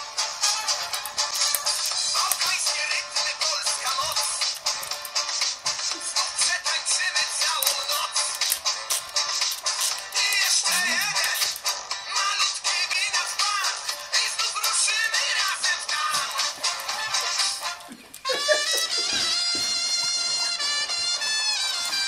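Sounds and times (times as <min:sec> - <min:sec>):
chirpy electronic toy voice singing: 0:10.2 - 0:11.4.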